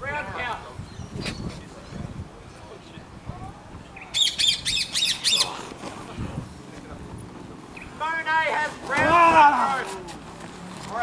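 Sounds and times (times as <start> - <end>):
bird squawking harsh calls: 4.0 - 5.6.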